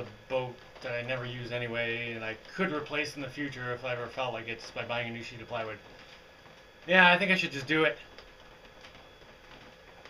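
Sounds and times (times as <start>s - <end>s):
raindrops ticking: 0.0s - 10.0s.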